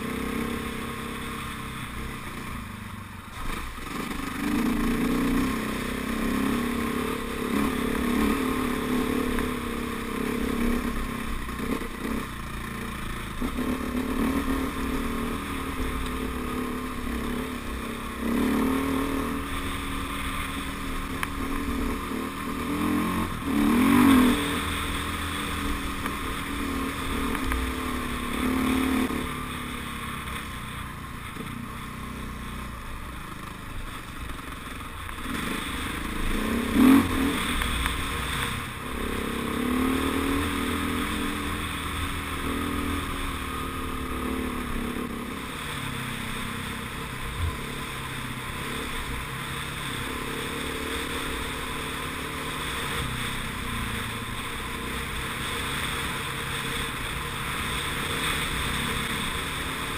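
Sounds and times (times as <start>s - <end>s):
motorcycle engine revving: 0.0s - 59.9s
wind and chassis noise: 0.0s - 59.9s.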